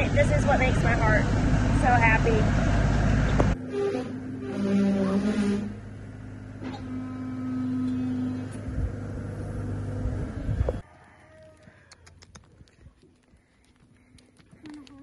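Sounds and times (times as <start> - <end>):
steady mechanical drone: 0.0 - 10.8
hooves crunching on gravel: 11.2 - 15.0.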